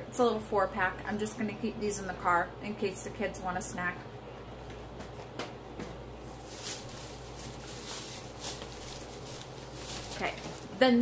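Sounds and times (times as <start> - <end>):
steady low hum: 0.0 - 11.0
plastic bags rustling: 6.2 - 11.0.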